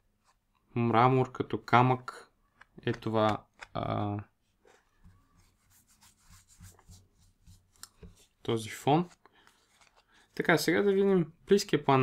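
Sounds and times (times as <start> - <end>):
playing cards sliding: 4.6 - 10.7.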